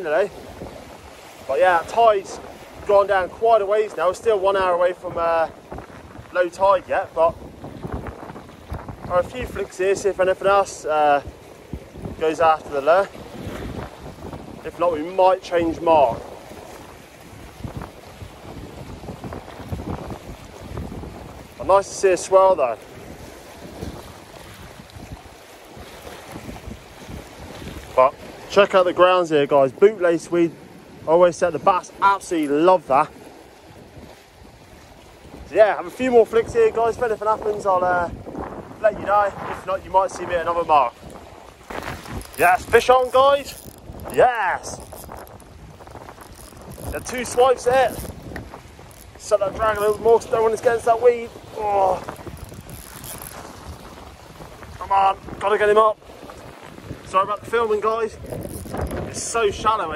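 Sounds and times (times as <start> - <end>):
small waves on rocks: 0.0 - 59.9
wind buffeting microphone: 0.0 - 59.9.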